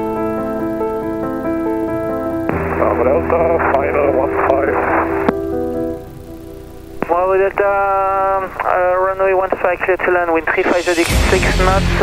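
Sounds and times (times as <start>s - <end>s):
background music with held notes: 0.0s - 7.1s, 10.7s - 12.0s
low hum: 0.0s - 9.6s
radio voice transmission: 2.5s - 5.4s, 6.9s - 12.0s.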